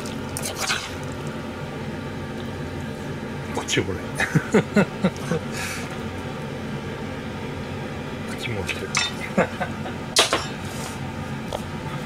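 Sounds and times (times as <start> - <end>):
steady background hum: 0.0 - 12.0
utensils and dishes clinking: 8.9 - 9.2, 10.2 - 10.6.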